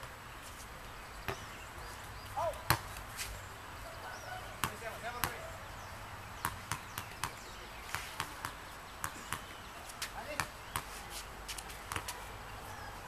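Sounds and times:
soccer ball thuds on hard court: 2.4 - 2.9, 4.6 - 5.4, 11.9 - 12.2
ball bouncing quickly: 4.6 - 5.4.

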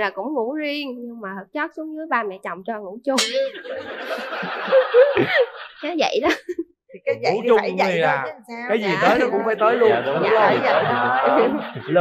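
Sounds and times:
people laughing: 3.2 - 7.4, 8.7 - 12.0.

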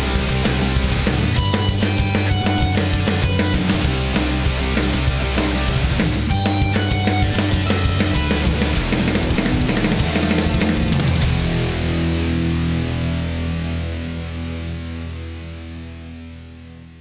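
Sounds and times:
rock music with guitars and drums: 0.0 - 17.0.

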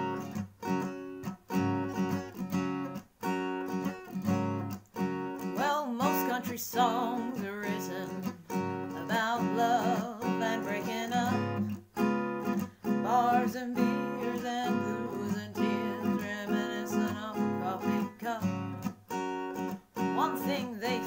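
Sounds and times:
acoustic guitar strumming: 0.0 - 21.0
woman singing: 5.4 - 11.8, 12.8 - 18.9, 20.0 - 21.0.

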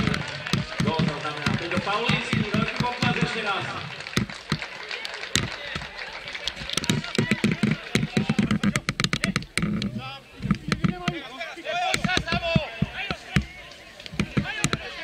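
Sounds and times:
short sharp knocks: 0.0 - 4.6, 11.9 - 15.0
people talking and calling out: 0.0 - 15.0.

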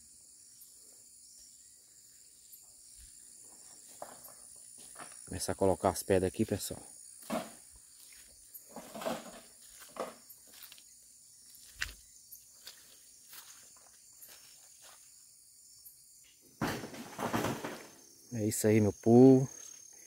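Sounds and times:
crickets chirring: 0.0 - 20.0
footsteps on wet dirt road: 7.2 - 15.2.

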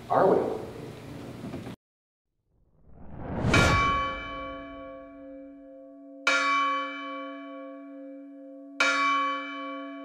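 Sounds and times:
deep bell ringing: 3.4 - 10.0.

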